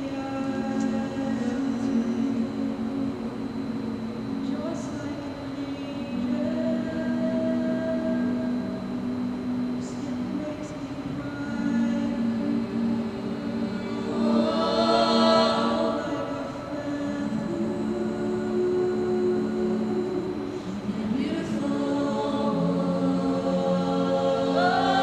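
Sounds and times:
female a cappella group singing: 0.0 - 25.0.

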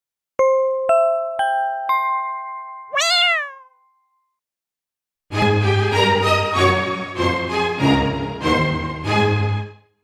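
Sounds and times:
cat meow: 2.9 - 3.7.

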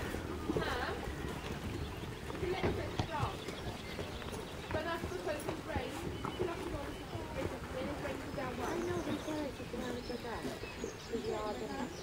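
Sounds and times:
horse hoofbeats on soft ground: 0.0 - 12.0
indistinct chatter: 0.0 - 12.0.

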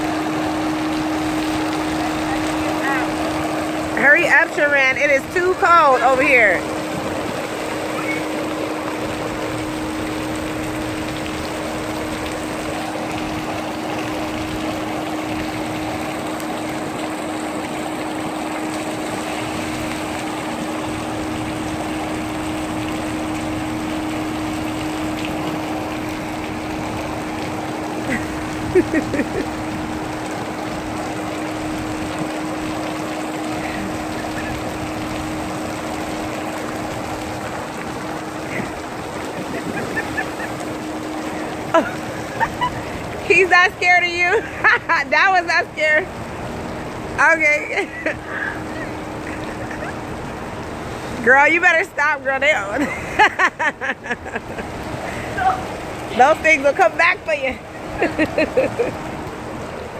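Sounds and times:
constant low hum: 0.0 - 59.9
water spraying and splashing: 0.0 - 59.9.

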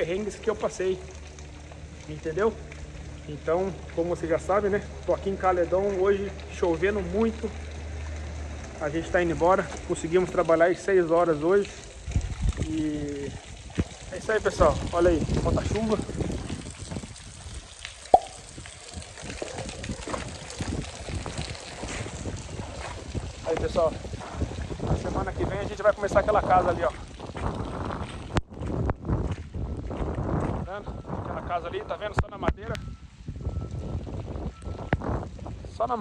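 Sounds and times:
heavy rain falling: 0.0 - 26.9
drips close by: 0.0 - 28.3, 32.8 - 35.8
wind buffeting microphone: 11.9 - 36.0.

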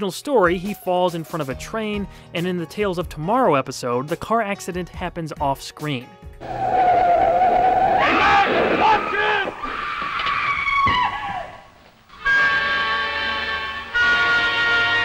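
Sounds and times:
car tyres screeching: 6.4 - 11.8
dramatic orchestral chord: 12.2 - 15.0.

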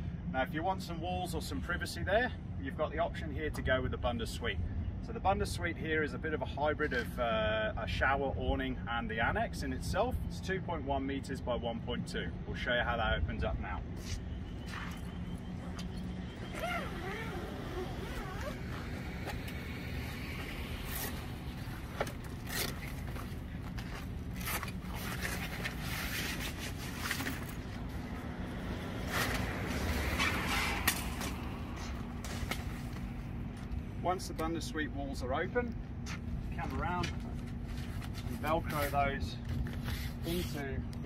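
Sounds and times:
steady low rumble: 0.0 - 39.8
zip and buckle noises: 14.0 - 19.8, 20.8 - 27.6
canvas rustling and flapping: 14.6 - 28.2.

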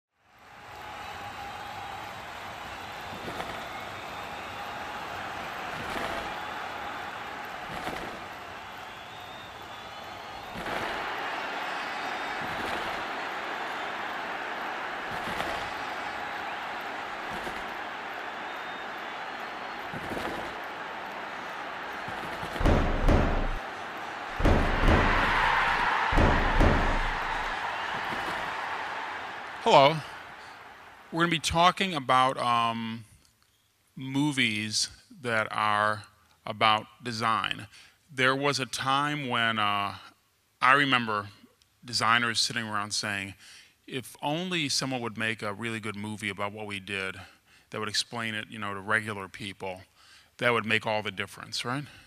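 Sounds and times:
heavy deep booming hits: 22.6 - 23.6, 24.4 - 27.4.

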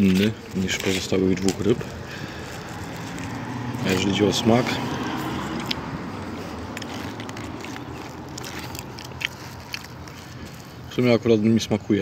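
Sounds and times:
person chewing: 0.0 - 11.0.

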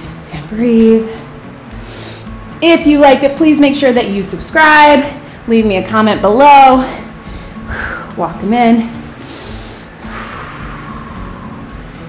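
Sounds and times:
person breathy exhale: 9.2 - 11.6.

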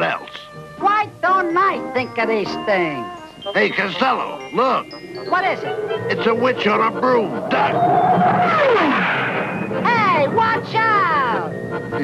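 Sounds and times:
cartoon whistling whoosh: 3.4 - 12.0.

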